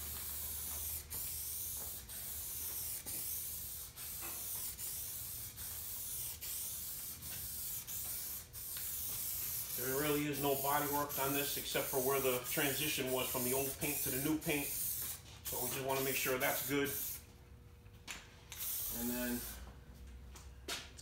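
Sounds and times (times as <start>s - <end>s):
aerosol can spraying hiss: 0.0s - 17.2s, 18.6s - 19.5s.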